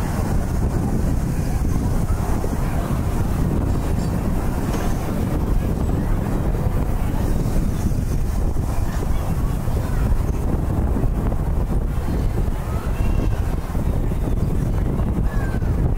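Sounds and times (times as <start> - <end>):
wind rushing over microphone: 0.0 - 15.9.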